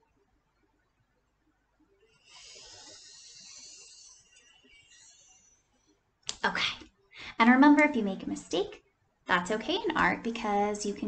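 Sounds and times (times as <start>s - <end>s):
marker hissing on whiteboard: 2.1s - 5.8s.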